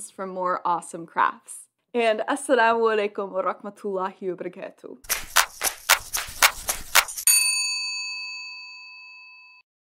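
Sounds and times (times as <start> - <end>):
bell ding: 7.3 - 9.6.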